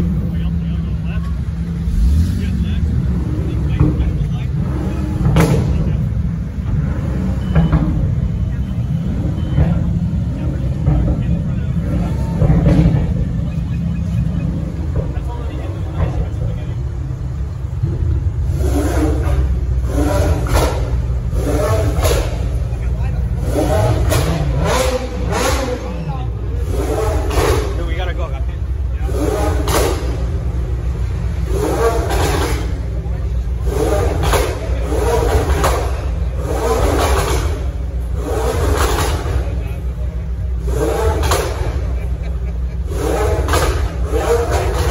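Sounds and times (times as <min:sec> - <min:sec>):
car engine rumbling and revving: 0:00.0 - 0:44.9
people talking: 0:00.0 - 0:44.9.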